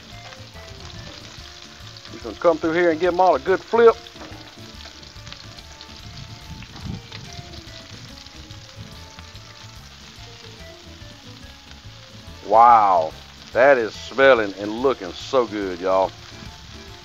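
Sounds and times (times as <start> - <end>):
shrimp sizzling in hot oil: 0.0 - 17.0.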